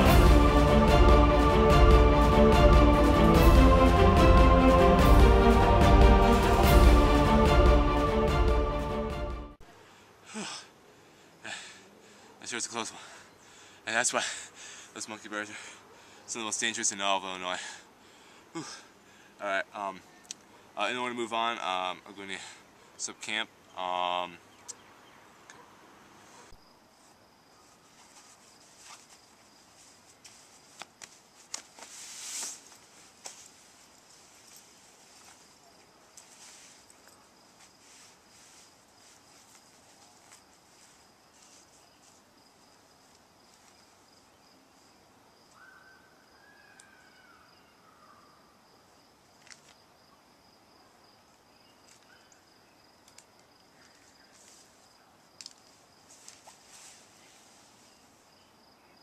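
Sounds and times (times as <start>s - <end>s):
sleeping bag rustling: 26.4s - 44.0s, 55.6s - 58.2s.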